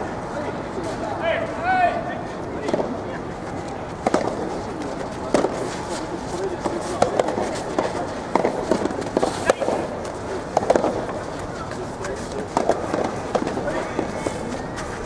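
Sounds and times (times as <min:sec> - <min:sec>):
voices: 0:00.0 - 0:15.0
tennis ball hit by rackets: 0:04.0 - 0:05.8, 0:06.6 - 0:14.4.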